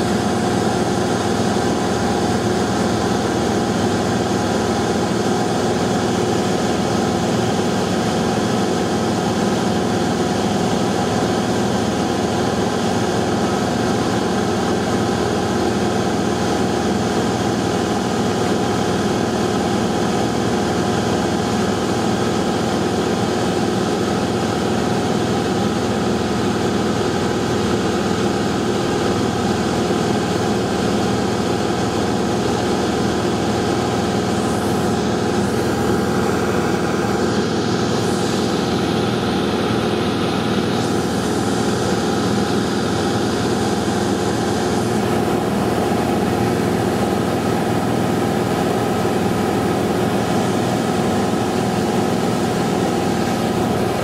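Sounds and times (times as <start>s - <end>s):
aircraft engine drone in cabin: 0.0s - 54.0s.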